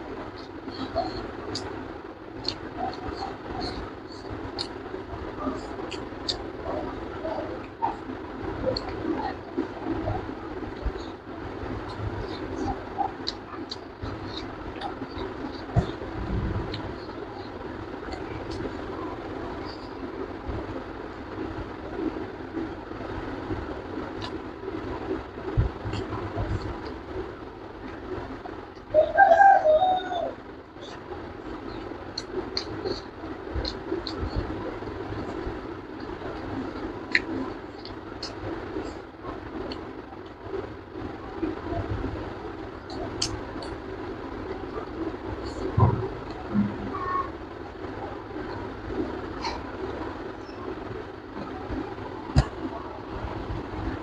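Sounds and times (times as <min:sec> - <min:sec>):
steady background hum: 0:00.0 - 0:54.0.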